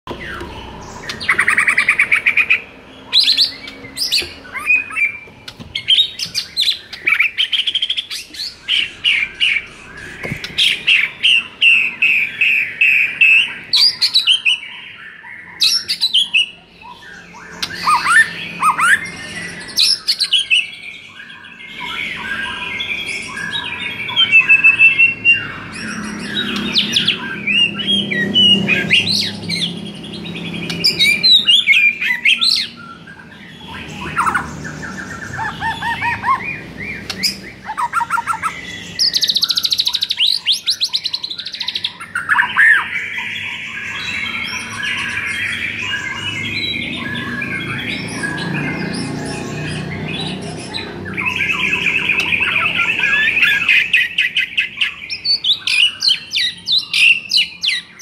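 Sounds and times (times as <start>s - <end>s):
songbird whistles and trills: 0.1s - 49.8s.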